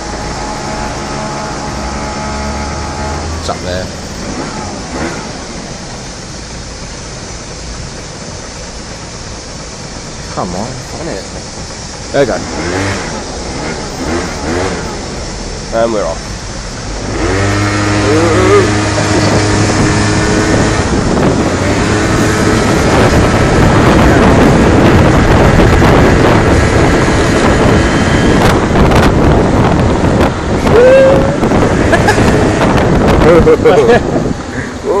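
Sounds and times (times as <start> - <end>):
moped engine running: 0.0 - 35.0
wind buffeting microphone: 17.0 - 35.0.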